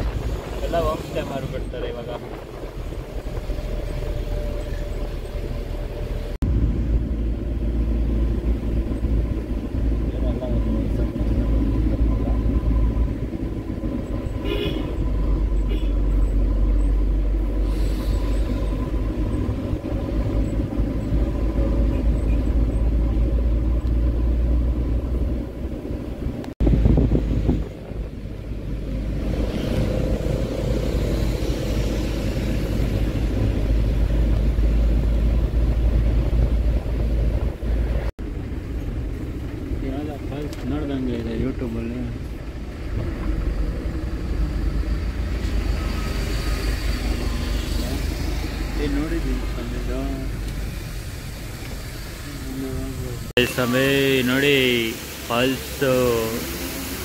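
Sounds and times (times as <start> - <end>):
minibus engine and road rumble: 0.0 - 57.0.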